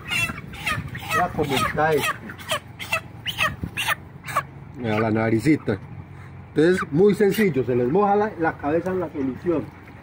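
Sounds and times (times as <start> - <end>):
chicks peeping: 0.0 - 5.9, 6.5 - 9.7.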